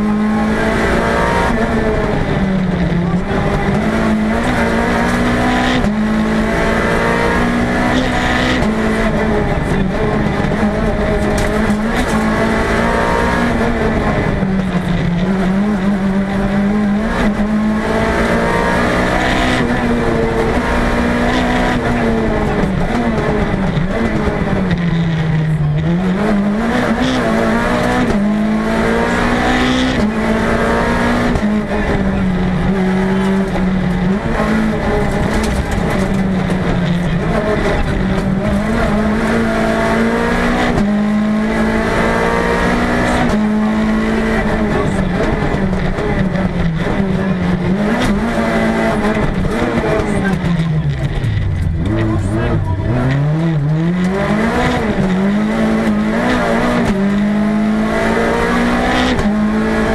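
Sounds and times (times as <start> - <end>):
rally car engine revving: 0.0 - 59.9
tyre and road noise: 0.0 - 59.9.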